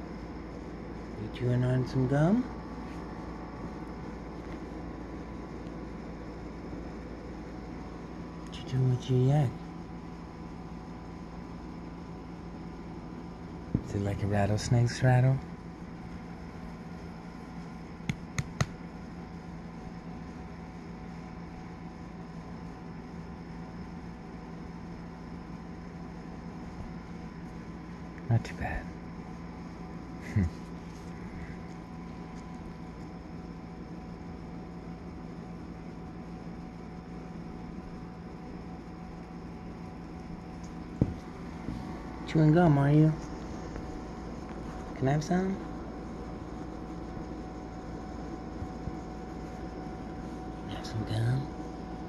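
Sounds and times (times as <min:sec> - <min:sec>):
low background hum: 0:00.0 - 0:52.0.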